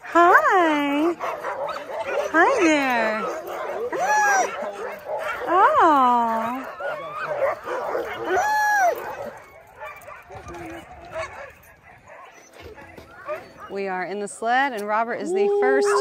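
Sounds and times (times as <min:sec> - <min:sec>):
sled dogs barking and yipping: 0:00.0 - 0:16.0
dog howling: 0:01.2 - 0:13.7, 0:15.2 - 0:16.0.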